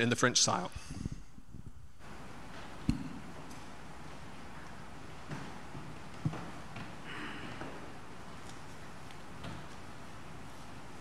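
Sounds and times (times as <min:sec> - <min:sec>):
knocks and thumps of person moving: 0:02.4 - 0:10.9.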